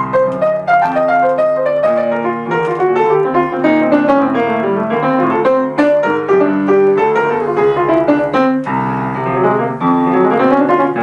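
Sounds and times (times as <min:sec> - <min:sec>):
solo jazz piano: 0:00.0 - 0:11.0.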